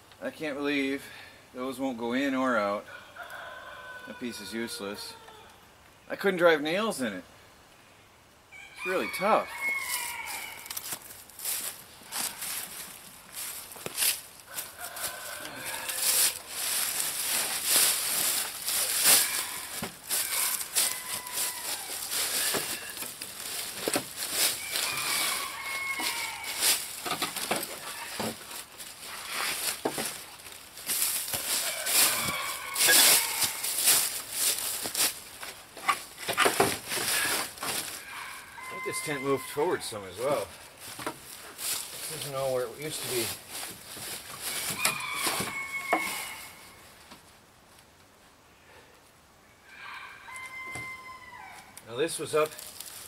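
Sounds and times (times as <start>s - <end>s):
wooden boards knocking and clattering: 35.8s - 37.8s.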